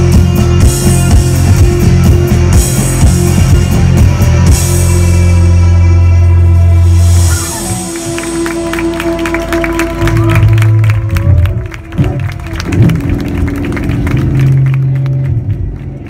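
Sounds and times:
bass notes: 0.0 - 16.0
audience applause: 7.5 - 16.0.

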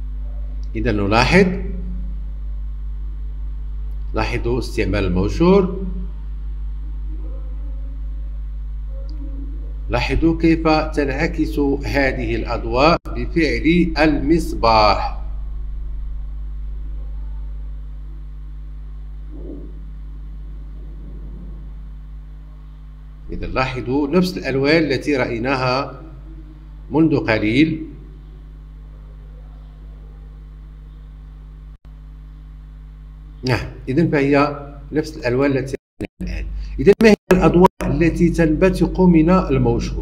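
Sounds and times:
low electrical hum: 0.0 - 40.0.

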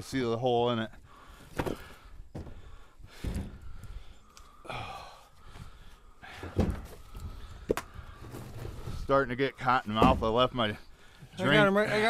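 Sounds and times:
firewood rounds knocking together: 1.5 - 4.5, 6.4 - 9.0.

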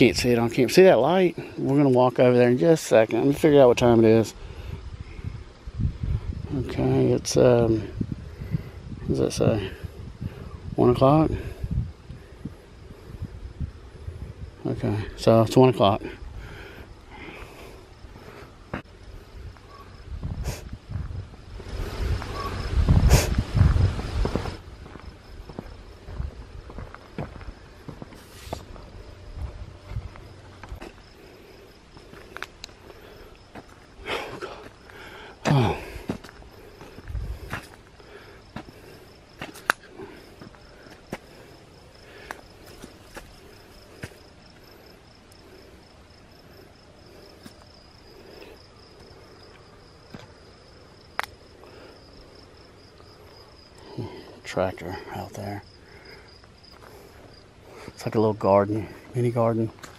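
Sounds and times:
crickets chirping: 0.0 - 59.9
footsteps on grass and gravel: 19.5 - 31.3, 31.9 - 44.7, 56.4 - 58.0, 58.8 - 59.9.

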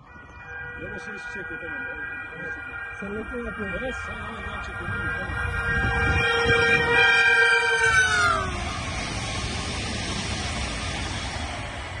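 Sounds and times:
multi-tone train horn: 0.0 - 9.6
train passing at speed: 0.0 - 12.0.

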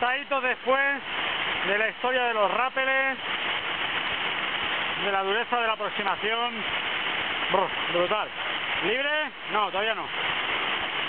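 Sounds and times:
waterfall rushing over boulders: 0.0 - 11.0.

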